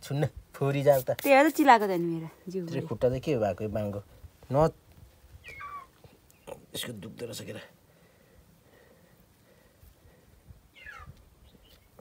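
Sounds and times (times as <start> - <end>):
puppy whining: 5.4 - 6.0.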